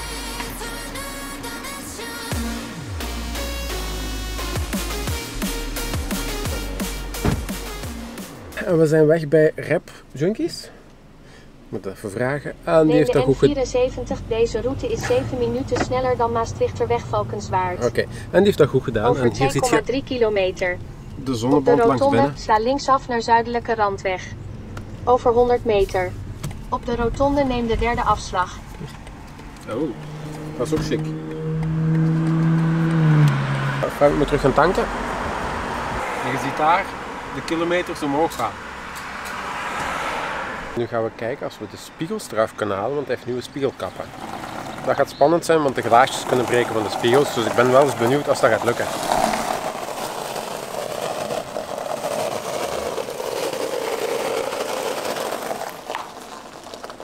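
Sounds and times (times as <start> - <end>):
sports car engine passing by: 27.9 - 40.8, 43.8 - 56.9
tyres crunching on gravel: 42.1 - 57.0.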